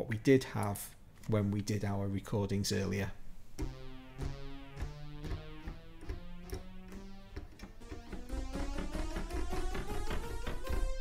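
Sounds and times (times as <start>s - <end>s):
synthesizer notes: 3.6s - 11.0s.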